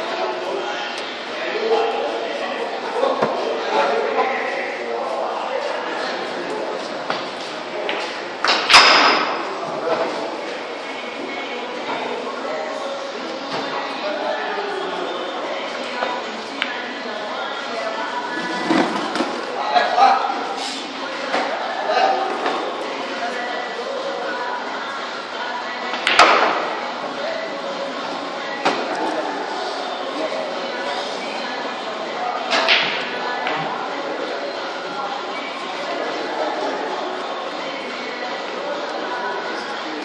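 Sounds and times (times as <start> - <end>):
voices chattering: 0.0 - 40.0.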